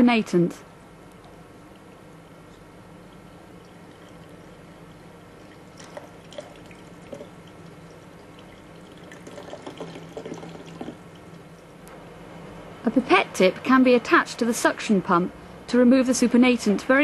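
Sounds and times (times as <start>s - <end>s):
steady faint hum: 0.0s - 17.0s
liquid splashing into metal sink: 5.3s - 11.5s.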